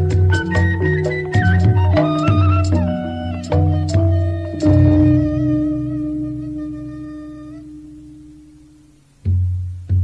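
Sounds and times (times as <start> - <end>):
higher wavering held note: 0.0 - 9.0.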